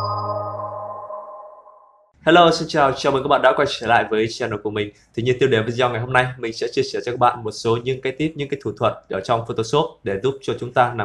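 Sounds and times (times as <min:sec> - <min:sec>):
jingle closing chord: 0:00.0 - 0:02.0.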